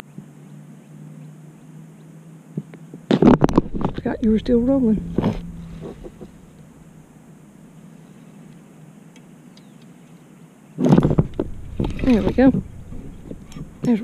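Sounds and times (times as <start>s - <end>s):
faint outdoor background: 0.0s - 14.0s
woman's wordless voice: 3.9s - 5.2s, 12.0s - 12.6s, 13.8s - 14.0s.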